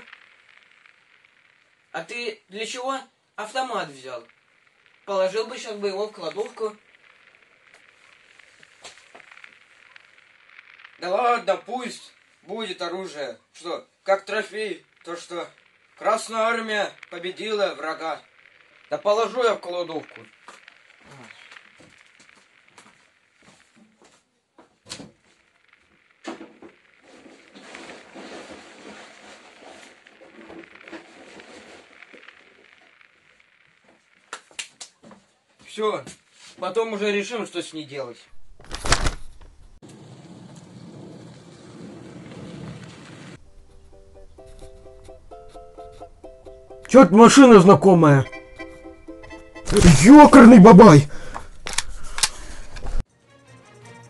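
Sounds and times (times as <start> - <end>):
quiet background music: 43.4 - 49.8.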